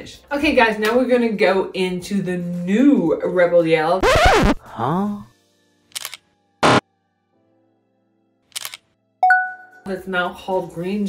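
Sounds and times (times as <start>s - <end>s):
faint background music: 0.0s - 11.0s
camera shutter click: 6.0s - 6.2s, 8.6s - 8.8s.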